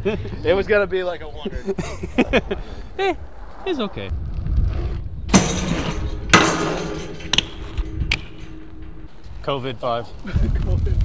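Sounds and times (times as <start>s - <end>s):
bike clanking on metal rail: 5.3s - 10.0s
grinding along metal rail: 5.3s - 10.0s
rail ringing: 5.4s - 10.0s.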